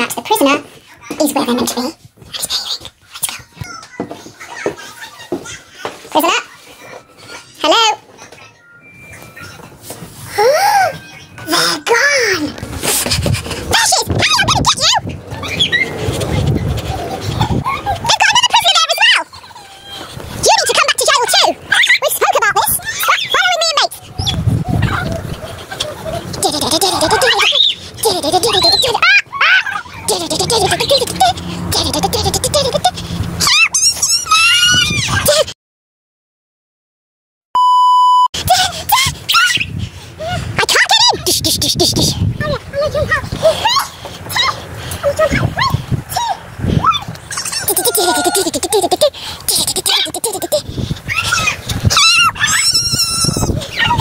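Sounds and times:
high electronic beep: 8.6 - 9.6, 37.6 - 38.3
girls squealing and laughing: 10.3 - 11.2, 13.0 - 35.5, 38.8 - 42.1, 42.8 - 54.0
shrill screams bending in pitch: 51.1 - 54.0.

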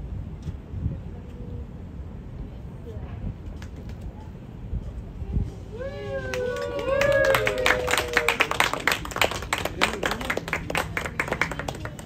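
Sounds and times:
group of people clapping: 6.3 - 12.0.

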